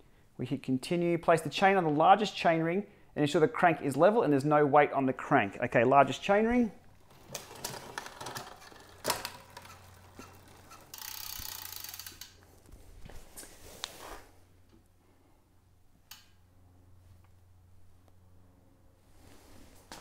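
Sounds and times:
bicycle chain clicking and rattling: 6.8s - 12.7s.

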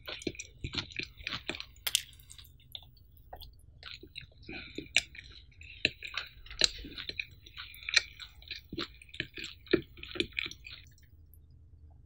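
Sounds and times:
chewing with mouth closed: 0.0s - 11.3s.

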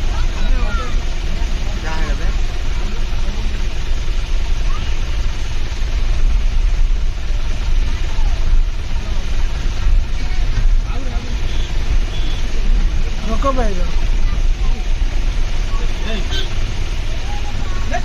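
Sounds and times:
vehicle engine and road rumble: 0.0s - 18.0s.

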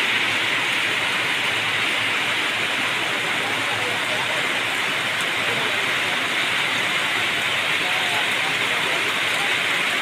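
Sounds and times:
rain falling: 0.0s - 10.0s.

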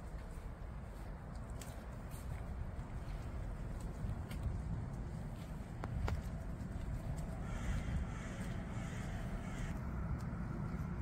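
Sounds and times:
steady low rumble: 0.0s - 11.0s
bird calling: 7.3s - 9.8s.

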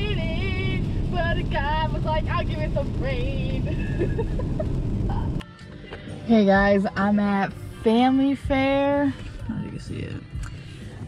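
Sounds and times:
road and rain noise in car: 0.0s - 11.0s.

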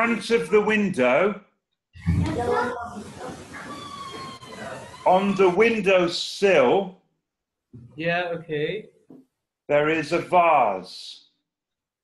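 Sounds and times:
room noise: 0.0s - 10.9s
voices over video call: 0.0s - 11.8s.

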